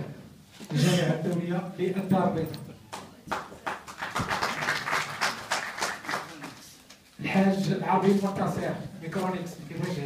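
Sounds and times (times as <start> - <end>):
audience applause: 3.3 - 6.7.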